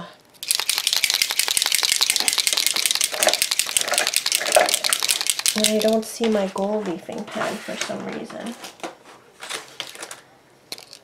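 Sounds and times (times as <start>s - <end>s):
paint pen rattling when shaken: 0.4s - 6.4s, 10.7s - 11.0s.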